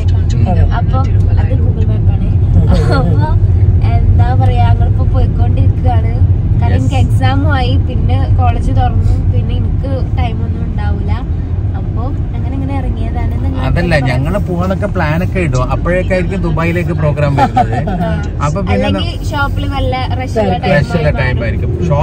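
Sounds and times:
car interior rumble: 0.0 - 22.0
lively conversation: 0.0 - 22.0.

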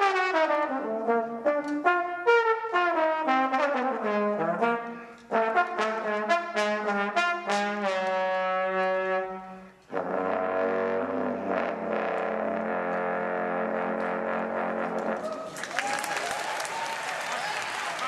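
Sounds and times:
jazz trombone solo: 0.0 - 15.2.

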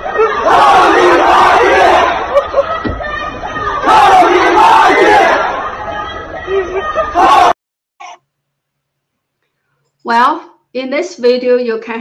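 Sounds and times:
crowd chanting: 0.0 - 7.6.

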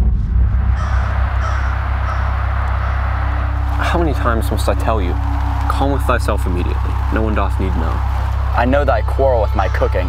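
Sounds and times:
low rumble: 0.0 - 9.6
crows cawing: 0.7 - 10.0.

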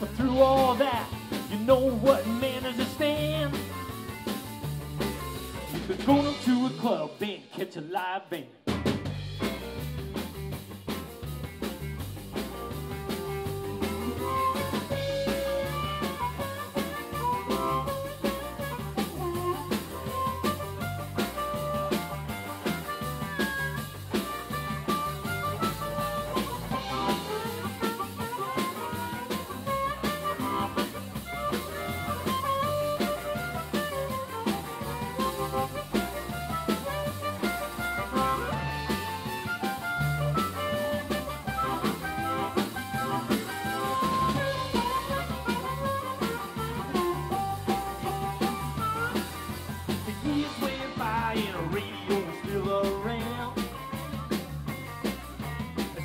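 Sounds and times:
electric guitar: 0.0 - 7.4, 8.7 - 56.0
drum kit: 0.0 - 56.0
live blues band: 0.0 - 56.0.

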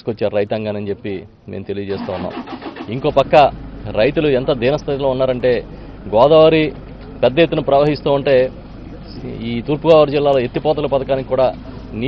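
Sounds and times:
man speaking: 0.0 - 12.0
vehicle engine running: 1.9 - 12.0.

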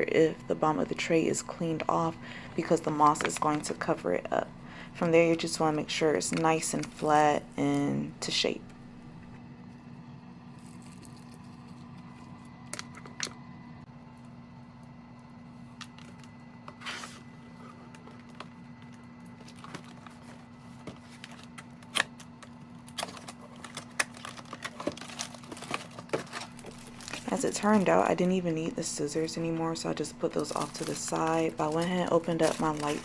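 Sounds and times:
steady low hum: 0.0 - 33.0
packaging rustling and tapping: 17.9 - 28.1, 30.4 - 33.0.

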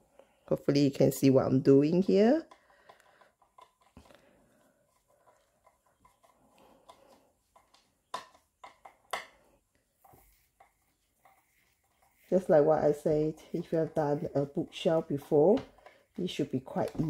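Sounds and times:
screwdriver clicks and creaks: 2.5 - 4.2.

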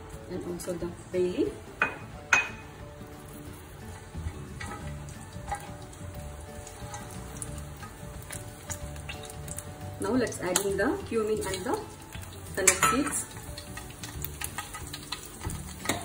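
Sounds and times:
spices sizzling in hot oil: 0.0 - 16.0.

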